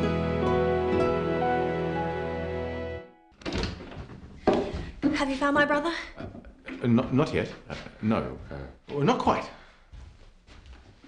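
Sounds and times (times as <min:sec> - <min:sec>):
music cue: 0:00.0 - 0:03.3.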